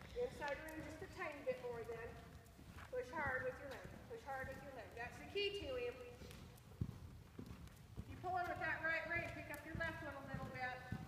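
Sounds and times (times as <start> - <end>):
hooves thudding on soft dirt: 0.0 - 11.0.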